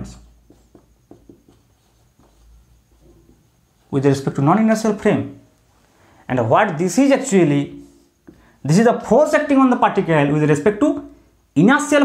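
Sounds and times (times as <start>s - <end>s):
marker writing on whiteboard: 0.0s - 4.9s.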